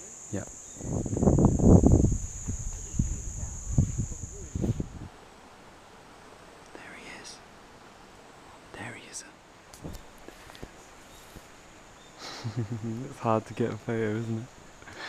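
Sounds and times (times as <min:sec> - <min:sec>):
insect high-pitched trill: 0:00.0 - 0:05.1
soft whispers: 0:06.7 - 0:07.4, 0:08.7 - 0:09.4.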